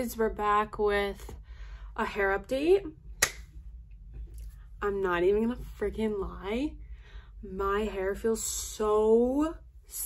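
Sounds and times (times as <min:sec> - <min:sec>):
finger snap: 0:03.2 - 0:03.5.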